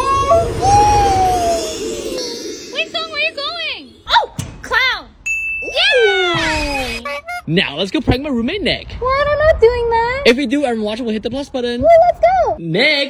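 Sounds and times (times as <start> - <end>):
steady electronic tone: 0.0 - 4.1
high-pitched voices exclaiming: 0.0 - 4.4, 5.6 - 7.5.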